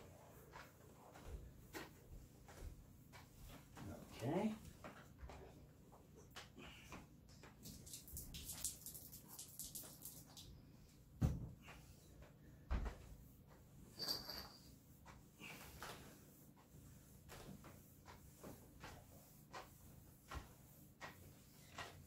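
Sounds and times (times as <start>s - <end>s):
mop spreading across floor: 0.0s - 22.0s.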